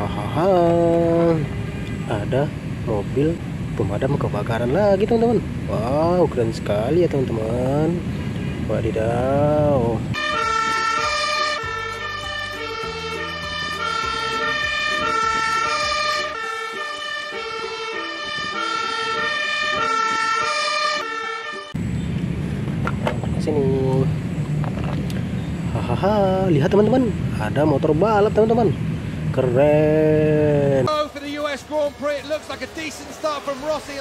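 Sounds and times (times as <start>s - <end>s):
fire engine siren: 10.1s - 21.9s.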